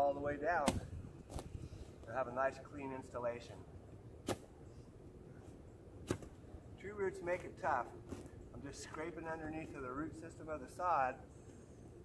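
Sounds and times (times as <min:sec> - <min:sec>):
shovel scraping into sod and roots: 0:06.0 - 0:06.4.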